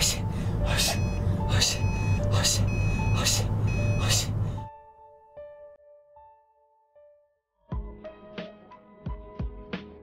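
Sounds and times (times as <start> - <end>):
car engine and road drone: 0.0 - 4.7
electronic tones: 0.7 - 4.4.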